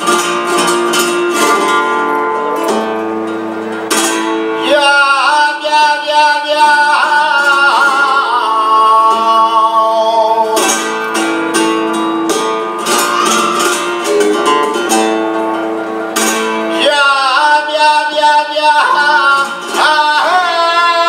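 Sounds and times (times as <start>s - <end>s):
flamenco guitar: 0.0s - 21.0s
man singing flamenco: 0.0s - 21.0s.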